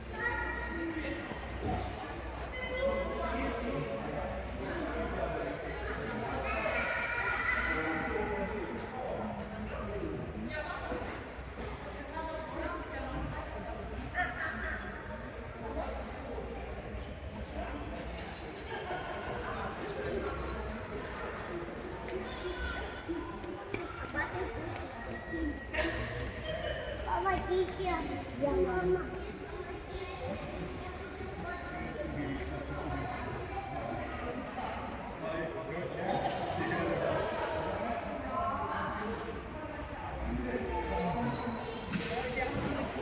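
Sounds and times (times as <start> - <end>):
indistinct voices in a hall: 0.0 - 43.0.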